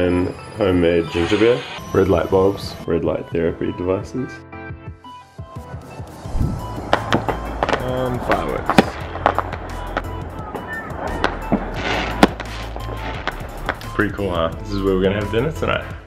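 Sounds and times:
background music: 0.0s - 16.0s
fireworks bangs and crackles: 5.7s - 15.2s
low rumble: 6.2s - 10.6s.

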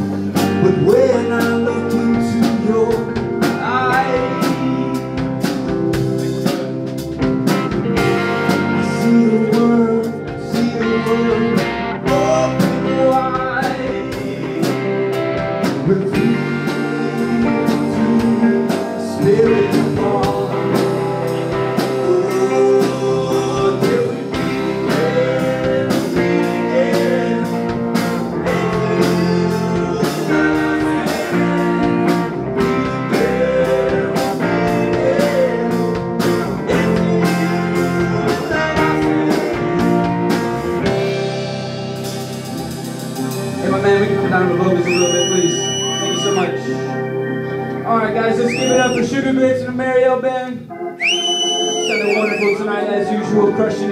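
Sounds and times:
person singing: 0.0s - 5.5s, 8.0s - 41.0s, 42.6s - 47.2s, 47.8s - 53.9s
drum kit: 0.0s - 46.8s, 47.9s - 49.2s, 51.0s - 52.6s
electric guitar: 0.0s - 53.9s.

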